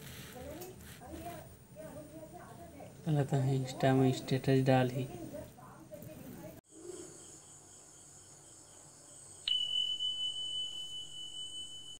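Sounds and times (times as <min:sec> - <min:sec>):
high-pitched electronic beep: 0:09.5 - 0:12.0.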